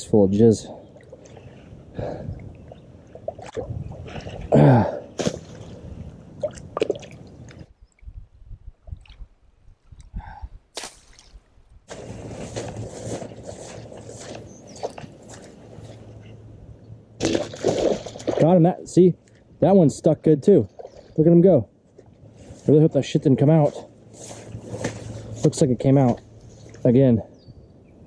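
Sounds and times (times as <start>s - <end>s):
floodwater sloshing and dripping: 0.7s - 8.2s, 10.8s - 16.4s, 17.2s - 18.6s.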